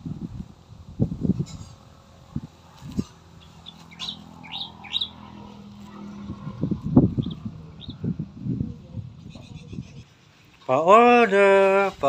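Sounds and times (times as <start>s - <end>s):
small birds chirping: 2.8s - 10.6s.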